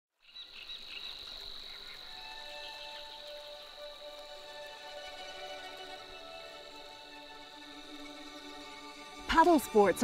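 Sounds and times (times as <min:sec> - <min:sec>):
bird chirps: 0:00.2 - 0:03.7
high insect-like drone: 0:00.4 - 0:10.0
soft ambient music: 0:00.8 - 0:10.0.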